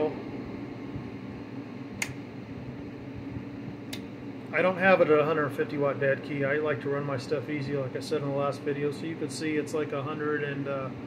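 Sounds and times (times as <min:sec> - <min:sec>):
low fan hum: 0:00.0 - 0:11.0
sharp clicks: 0:02.0 - 0:02.2.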